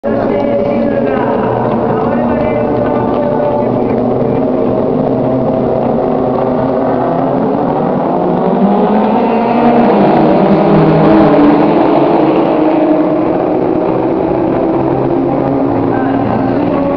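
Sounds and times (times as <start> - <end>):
race car engines revving: 0.0 - 16.9.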